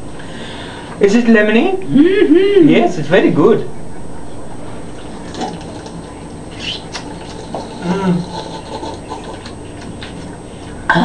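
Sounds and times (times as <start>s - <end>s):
person humming: 7.8s - 8.4s.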